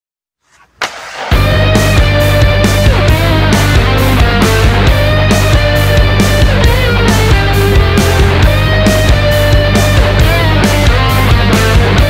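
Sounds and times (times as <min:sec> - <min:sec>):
rock band playing: 0:01.2 - 0:12.0.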